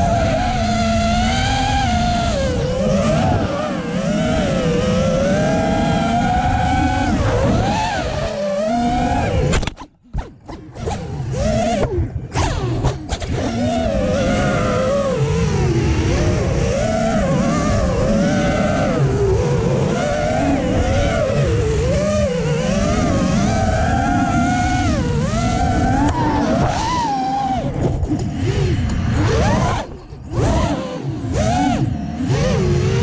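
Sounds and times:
drone motors whining: 0.0s - 33.0s.

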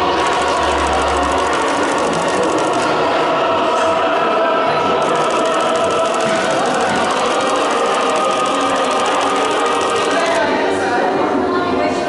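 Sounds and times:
fast even ticking pulse: 0.0s - 3.2s, 5.0s - 10.5s
choir-like music: 0.0s - 12.0s.

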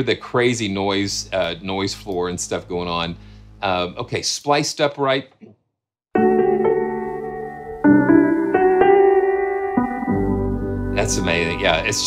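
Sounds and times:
lo-fi piano chords: 6.1s - 12.0s.

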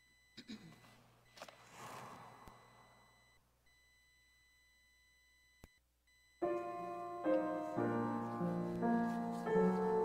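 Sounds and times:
soft rustle: 7.5s - 10.0s.

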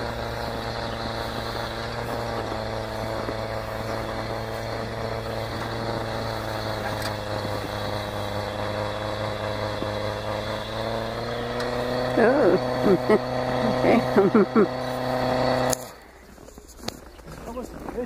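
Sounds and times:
electric snow blower running: 0.0s - 16.2s.

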